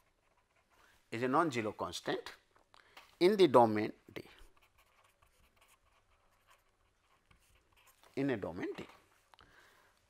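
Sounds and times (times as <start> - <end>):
pen scratching on paper: 4.4 - 8.1.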